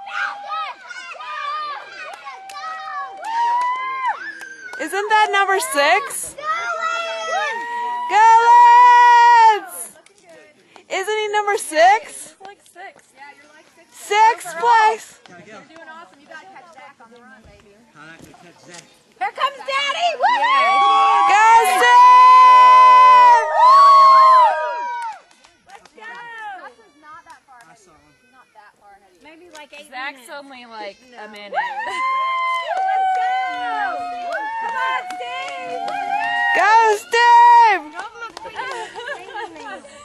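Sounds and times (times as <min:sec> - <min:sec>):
high-pitched cheering yell: 0:00.0 - 0:09.9, 0:20.0 - 0:25.2, 0:31.5 - 0:37.8.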